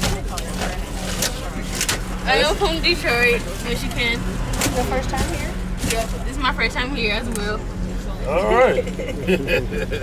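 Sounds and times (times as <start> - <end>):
bus engine drone: 0.0 - 10.0.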